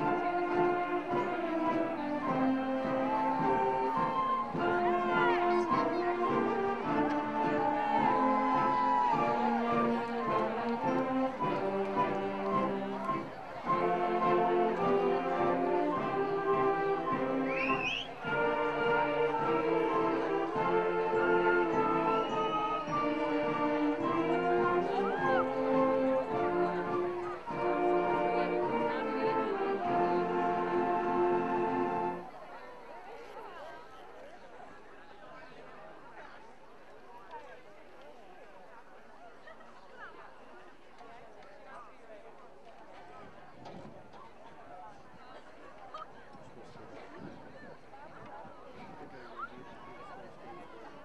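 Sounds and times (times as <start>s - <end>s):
brass band playing slow chords: 0.0s - 32.3s.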